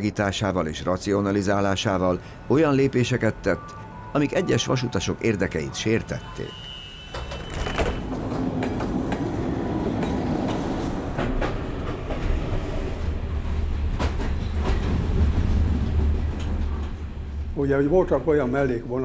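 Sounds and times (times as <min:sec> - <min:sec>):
train rumbling on rails: 0:00.0 - 0:19.0
wheels clacking on track: 0:07.1 - 0:17.6.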